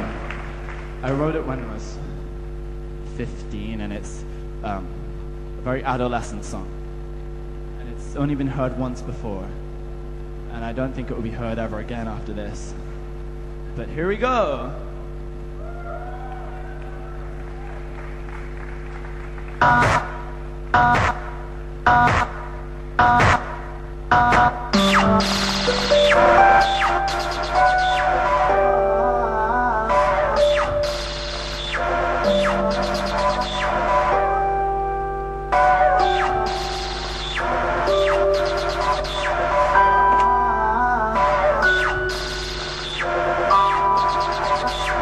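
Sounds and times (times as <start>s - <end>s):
sound system hum: 0.0s - 45.0s
instrumental music: 24.8s - 45.0s.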